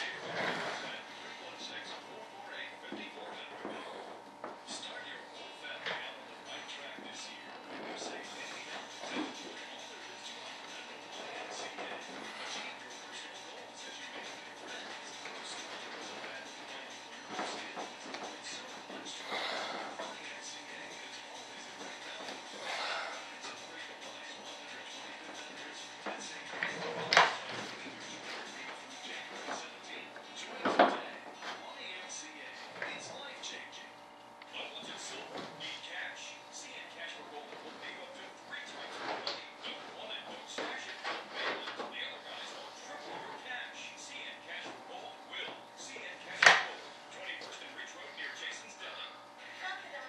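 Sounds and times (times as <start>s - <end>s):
faint background talk: 0.0s - 50.0s.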